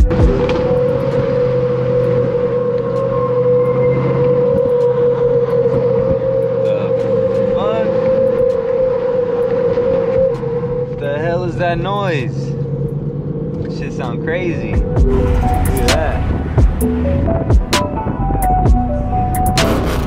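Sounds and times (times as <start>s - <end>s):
car engine droning: 0.0s - 20.0s.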